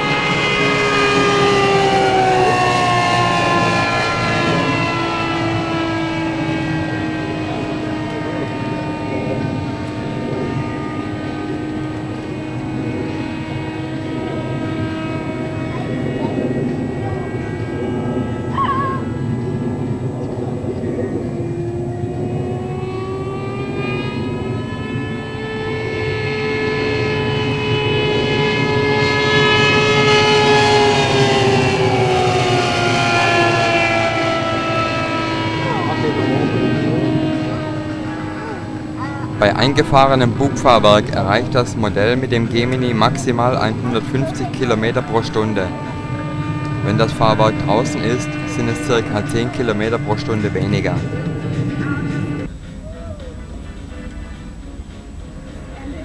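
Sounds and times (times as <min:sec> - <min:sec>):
model plane engine droning: 0:00.0 - 0:56.0.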